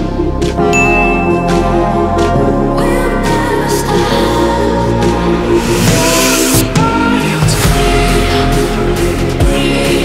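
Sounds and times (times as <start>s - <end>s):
background music: 0.0s - 10.0s
notification bell ding: 0.7s - 1.9s.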